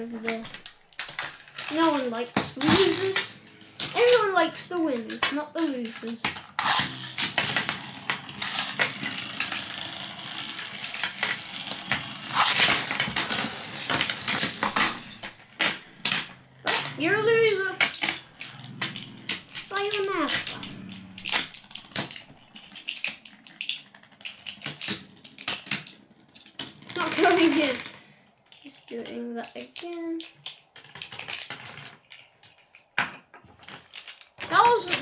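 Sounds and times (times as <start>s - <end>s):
child's wordless voice: 0.0s - 0.5s, 1.6s - 6.4s, 16.6s - 17.9s, 19.5s - 20.6s, 26.9s - 27.9s, 28.6s - 30.3s, 34.4s - 35.0s
spinning tops clattering in a tray: 0.3s - 28.0s, 33.6s - 35.0s.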